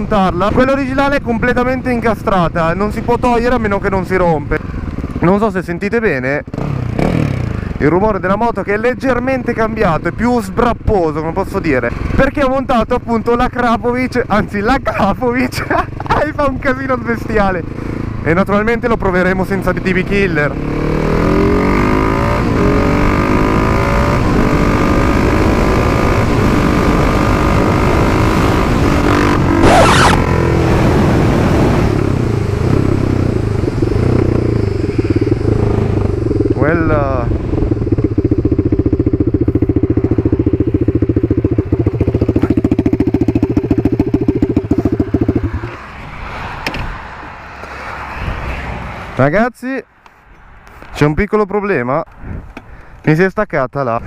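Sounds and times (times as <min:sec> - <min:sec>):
loud motorcycle engine revving: 0:06.4 - 0:07.8, 0:19.5 - 0:45.8.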